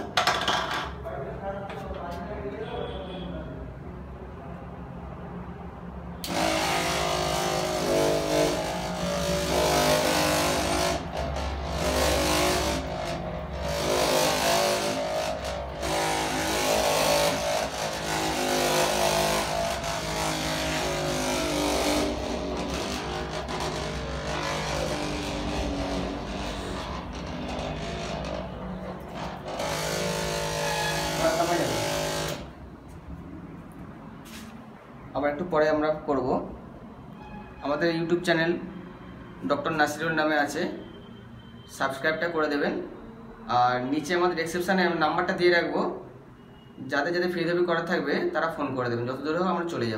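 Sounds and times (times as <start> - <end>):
electric massager motor hum: 6.3 - 28.4.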